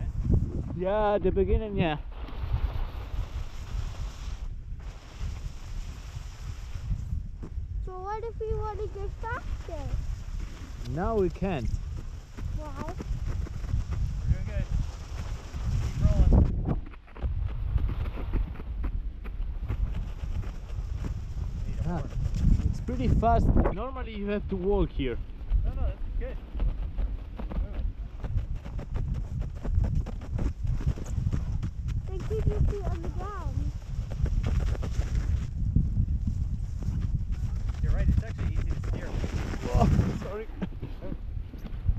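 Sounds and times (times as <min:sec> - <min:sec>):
sledge runners rumbling on snow: 0:00.0 - 0:41.9
wind on microphone: 0:00.0 - 0:41.9.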